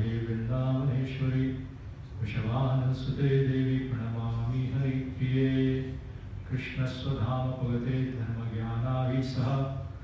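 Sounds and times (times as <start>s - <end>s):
man chanting verse: 0.0s - 9.9s.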